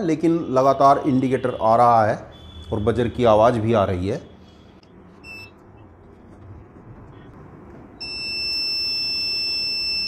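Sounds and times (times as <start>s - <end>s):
continuous high-pitched warning tone: 0.4s - 3.2s, 8.0s - 10.0s
short high beep: 5.2s - 5.6s, 8.0s - 10.0s.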